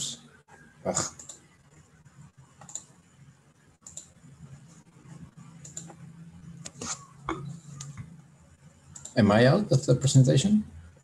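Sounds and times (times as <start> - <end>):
faint low hum: 0.0 - 11.0
computer clicks: 0.5 - 1.9, 2.5 - 3.0, 3.8 - 4.6, 5.4 - 6.0, 8.8 - 9.2.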